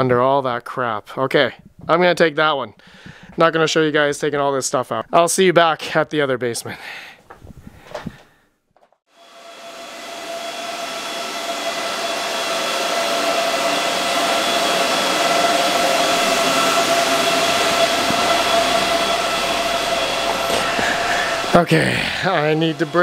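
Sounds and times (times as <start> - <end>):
cooling fans whirring: 9.2 - 23.0.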